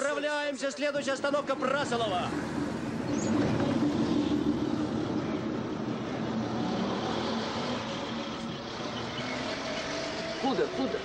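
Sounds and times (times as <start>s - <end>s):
bus diesel engine pulling away: 2.0s - 11.0s.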